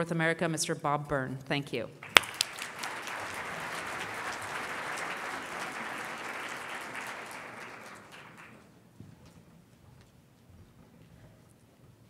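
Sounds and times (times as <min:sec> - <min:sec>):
audience applauding: 0:02.0 - 0:08.7.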